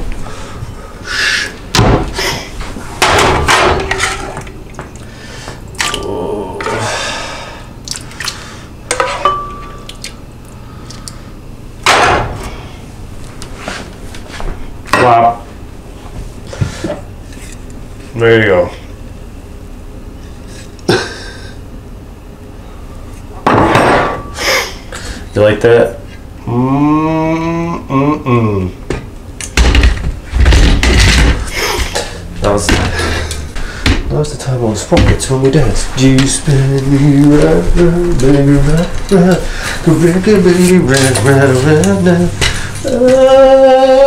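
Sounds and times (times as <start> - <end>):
low room hum: 0.0 - 44.0
pots and dishes clattering: 3.0 - 4.6, 8.9 - 9.8.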